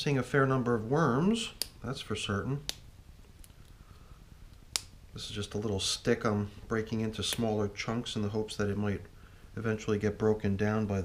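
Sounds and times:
stick snapping: 2.6s - 3.8s, 4.5s - 5.0s.

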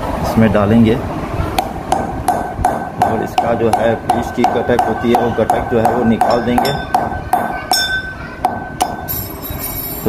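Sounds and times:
pestle clinking in metal mortar: 1.6s - 10.0s.

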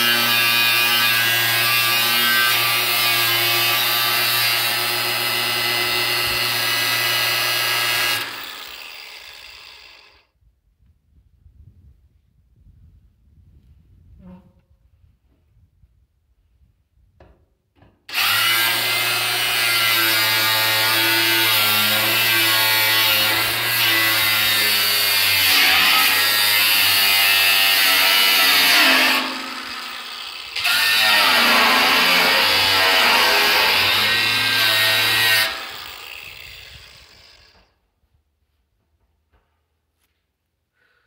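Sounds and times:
angle grinder cutting steel: 0.0s - 10.2s, 18.1s - 37.7s.

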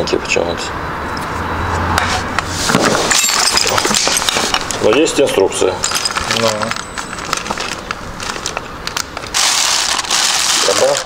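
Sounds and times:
plastic bag crinkling: 5.9s - 11.0s.

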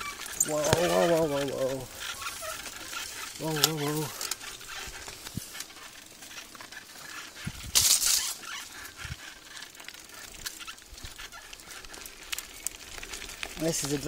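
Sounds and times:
bike clicks and rattles: 0.0s - 14.0s
leaves and stems brushing: 0.0s - 14.0s.

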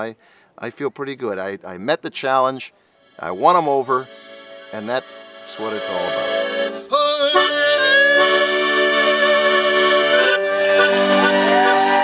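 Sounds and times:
accordion playing chords: 2.8s - 12.0s.

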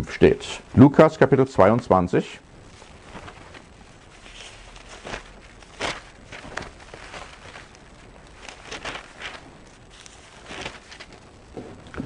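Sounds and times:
pages being turned: 2.7s - 12.0s.

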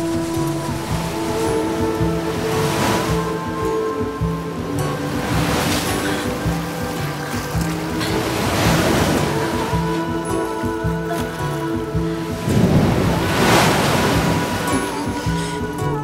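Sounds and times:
ocean surf breaking: 0.0s - 16.0s
orchestral music with bass: 0.0s - 16.0s.

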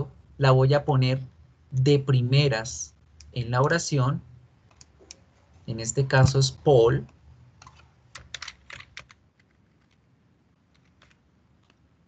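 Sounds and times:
computer keyboard typing: 7.6s - 10.0s.

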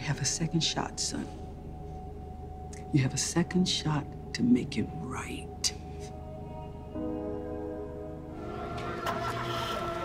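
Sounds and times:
soft sustained orchestral chord: 0.0s - 10.0s
street noise: 8.3s - 10.0s.

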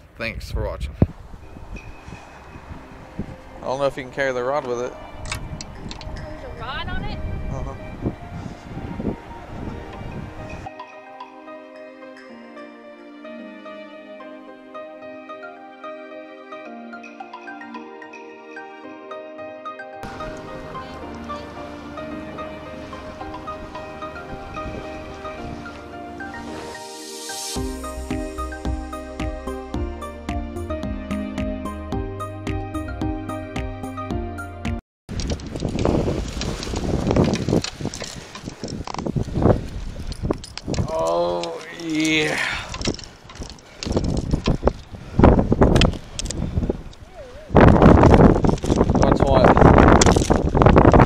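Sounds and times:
wind buffeting microphone: 0.0s - 10.7s, 20.0s - 26.6s, 35.1s - 51.0s
electronic background music: 1.4s - 34.8s.

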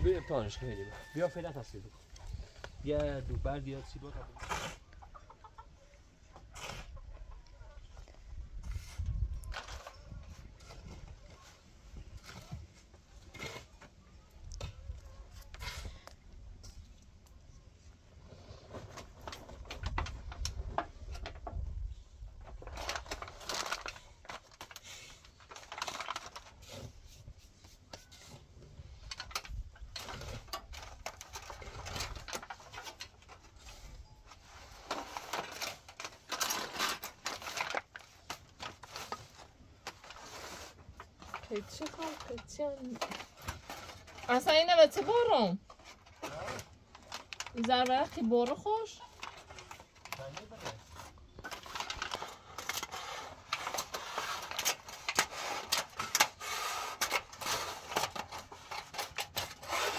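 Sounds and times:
aluminium foil crinkling: 18.5s - 59.9s.

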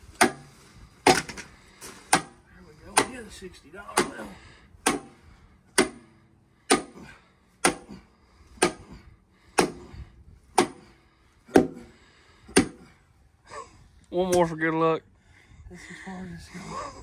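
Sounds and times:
sledgehammer striking rebar: 0.1s - 3.2s, 3.8s - 12.9s.

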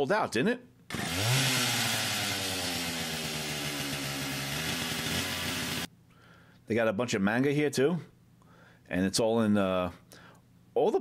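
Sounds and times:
chainsaw engine running: 0.9s - 5.9s.

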